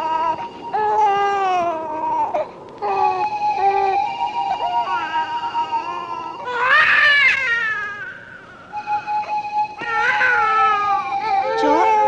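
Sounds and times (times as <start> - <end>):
baby wailing: 0.0 - 12.0.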